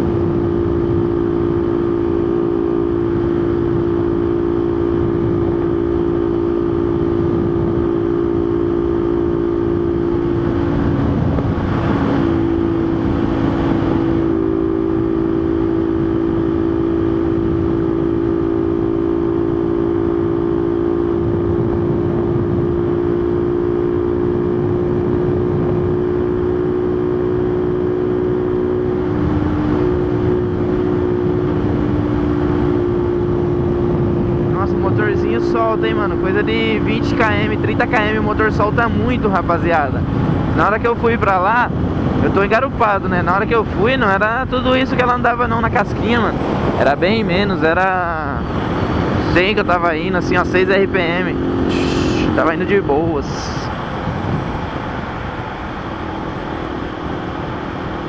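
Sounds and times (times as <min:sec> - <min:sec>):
motorcycle engine cruising: 0:00.0 - 0:58.0
wind rumbling on microphone: 0:00.0 - 0:58.0.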